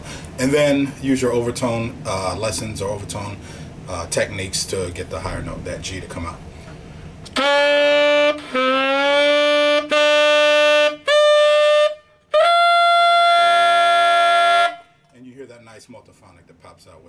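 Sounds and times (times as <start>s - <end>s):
tenor saxophone held tones: 7.3s - 15.1s.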